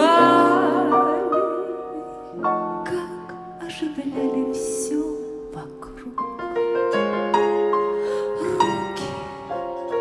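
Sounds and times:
slow piano melody: 0:00.0 - 0:10.0.

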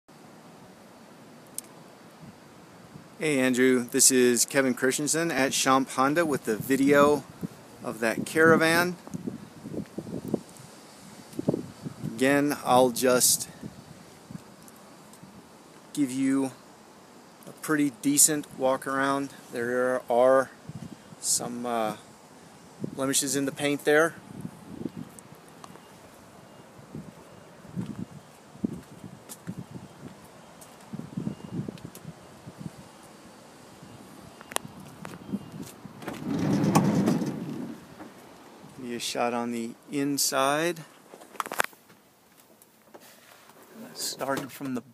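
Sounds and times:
wind on microphone: 0:06.5 - 0:12.3, 0:13.3 - 0:14.4, 0:20.6 - 0:22.0, 0:22.8 - 0:25.8, 0:26.8 - 0:30.2, 0:30.9 - 0:32.9, 0:33.8 - 0:38.0
sliding van door rolling: 0:36.0 - 0:38.2.

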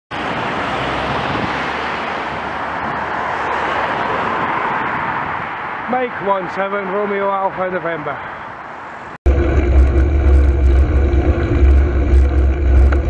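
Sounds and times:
road noise: 0:00.1 - 0:13.0.

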